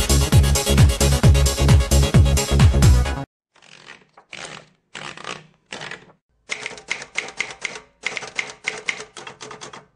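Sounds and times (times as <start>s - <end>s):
typewriter keys clacking: 3.6s - 9.9s.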